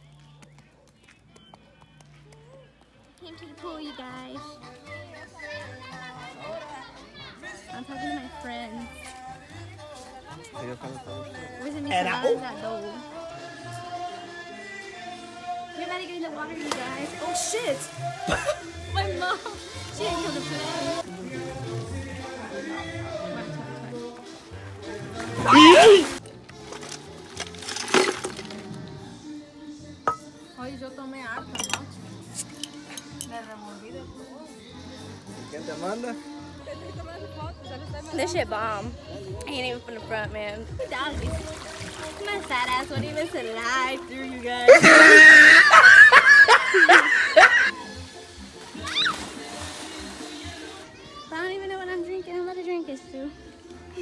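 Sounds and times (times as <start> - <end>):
background music: 0.0 - 54.0
water splashing: 16.5 - 18.3, 25.0 - 28.6, 40.8 - 50.8
high-pitched shout: 25.4 - 26.2, 44.7 - 47.8, 48.8 - 49.2
bottles and ice rattling in bucket: 26.2 - 28.8
glass clink: 30.1 - 30.3, 31.4 - 31.9.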